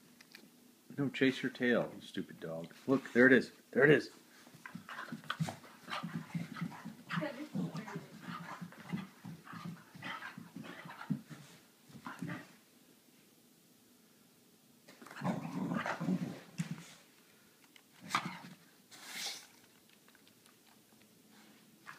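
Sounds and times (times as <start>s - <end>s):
dog growling: 4.7s - 11.1s, 15.0s - 16.5s.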